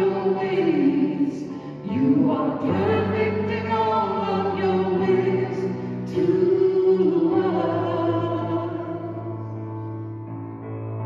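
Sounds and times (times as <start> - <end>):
people singing over a microphone: 0.0 - 9.3.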